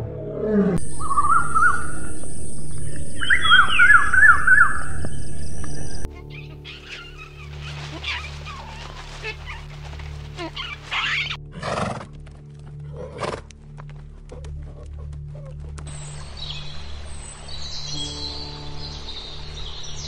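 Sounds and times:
ambient drone music: 0:00.0 - 0:20.0
high chirping calls: 0:00.8 - 0:11.4
hooves on stony ground: 0:00.8 - 0:19.2.

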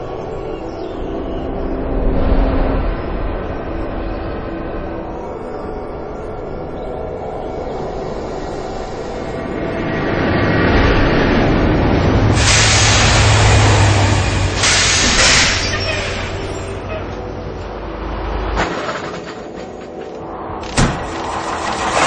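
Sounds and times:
train rumbling: 0:00.0 - 0:22.0
loud hissing rush: 0:12.0 - 0:16.8.

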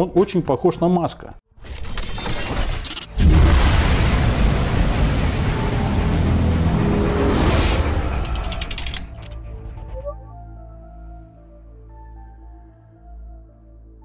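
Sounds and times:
rocket launch rushing rumble: 0:03.2 - 0:08.3
intro music: 0:05.0 - 0:12.5.

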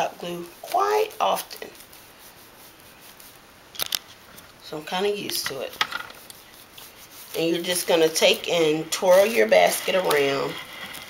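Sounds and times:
faint room hiss: 0:00.0 - 0:11.0
handling clicks and rustles: 0:03.1 - 0:04.6.

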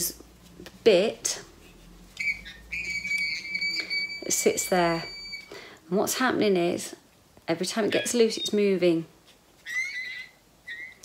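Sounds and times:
hearing aid feedback squeal: 0:02.2 - 0:05.6.

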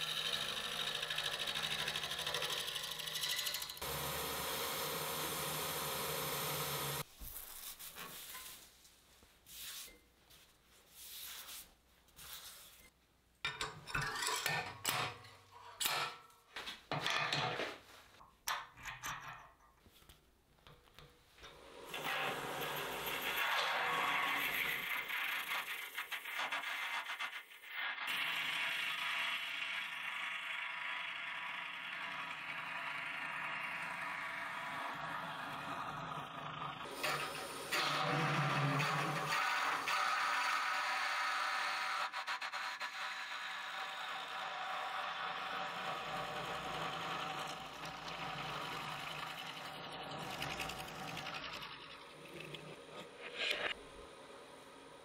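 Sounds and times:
drill bit boring into wood: 0:00.0 - 0:07.0
lathe running: 0:00.0 - 0:07.0, 0:43.3 - 0:53.0.

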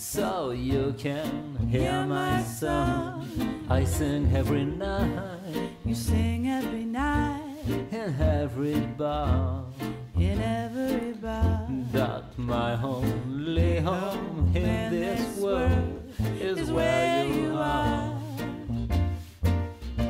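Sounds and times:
swing jazz combo: 0:00.1 - 0:20.0.

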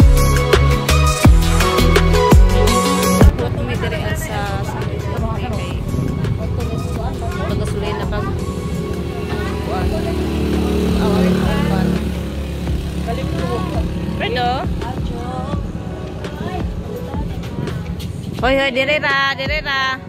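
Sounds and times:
music: 0:00.0 - 0:20.0
motor vehicle passing: 0:03.1 - 0:19.2
voices: 0:03.3 - 0:20.0.

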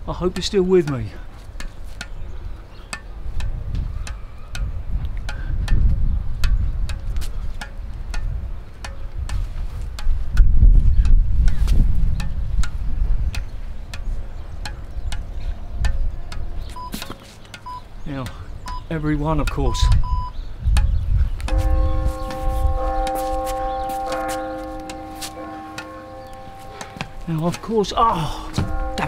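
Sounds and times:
squash ball bouncing on racket strings: 0:00.4 - 0:17.7
wind rumbling on microphone: 0:01.5 - 0:17.0, 0:17.8 - 0:24.5.

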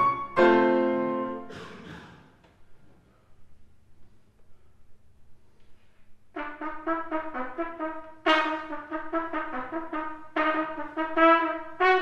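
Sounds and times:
solo trumpet: 0:00.0 - 0:01.5, 0:06.3 - 0:12.0.

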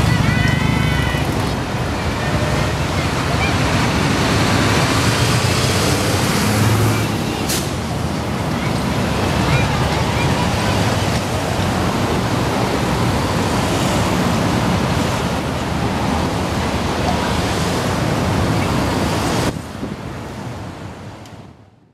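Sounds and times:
road traffic passing: 0:00.0 - 0:21.8.

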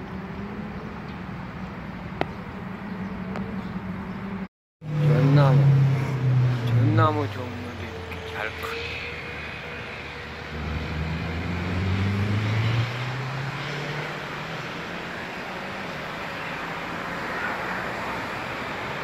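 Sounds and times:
engine revving: 0:04.8 - 0:15.8.

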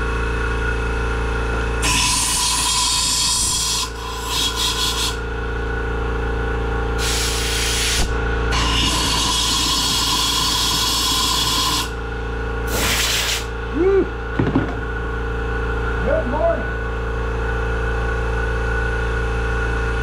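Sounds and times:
steady background hum: 0:00.0 - 0:20.0
compressed air blasts hissing: 0:07.0 - 0:08.1, 0:12.7 - 0:13.5.

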